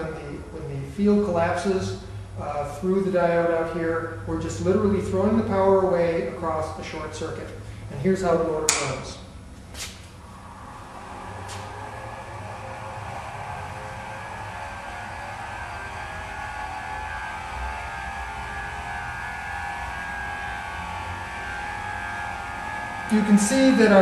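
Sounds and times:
electric motor whirring whine: 10.0 - 24.0.

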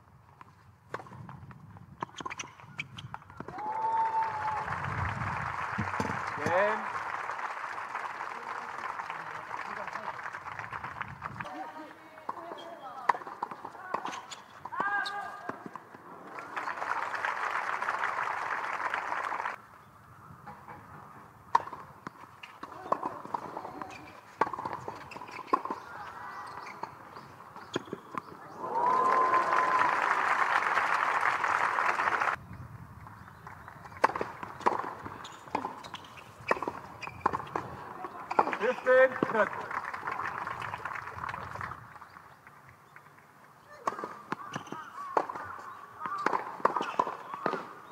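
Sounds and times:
crowd applause: 4.1 - 11.4, 16.3 - 19.6, 28.6 - 32.4, 39.0 - 41.8
racket hitting tennis ball: 22.5 - 25.9, 33.8 - 38.6, 43.8 - 47.9.

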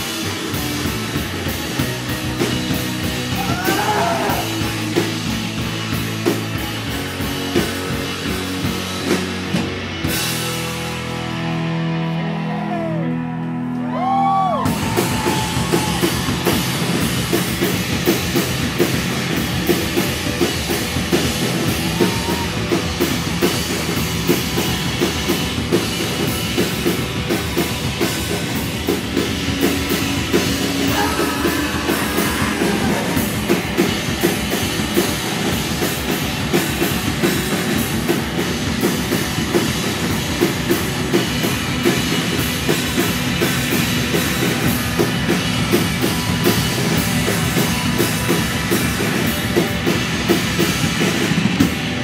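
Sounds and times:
drum kit beat: 0.0 - 11.6, 14.0 - 52.0
electric guitar: 0.0 - 52.0
live rock band playing: 0.0 - 52.0.

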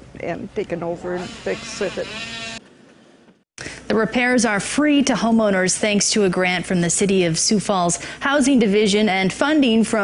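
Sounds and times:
woman speaking: 0.2 - 2.2, 3.9 - 10.0.

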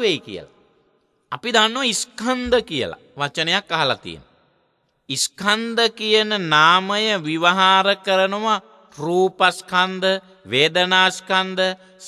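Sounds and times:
man chanting sermon: 0.0 - 0.5, 1.3 - 4.3, 5.1 - 12.0.

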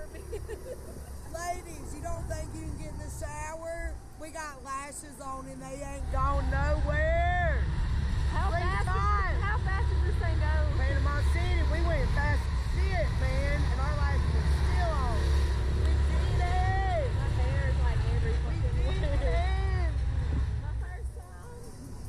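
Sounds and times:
people laughing and exclaiming: 0.0 - 1.7.

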